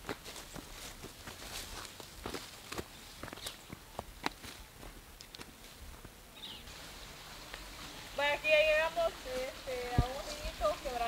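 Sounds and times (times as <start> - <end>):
faint outdoor ambience: 0.0 - 11.0.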